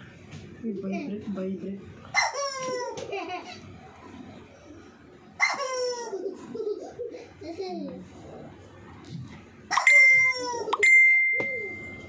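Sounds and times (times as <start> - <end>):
metallic bell dings: 9.8 - 12.0.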